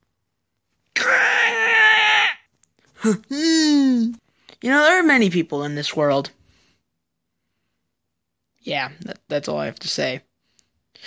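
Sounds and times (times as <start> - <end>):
loud wailing cry: 1.0 - 2.5.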